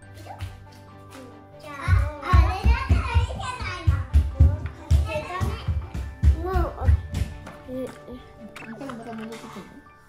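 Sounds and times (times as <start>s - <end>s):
background music with beat: 0.0s - 8.2s.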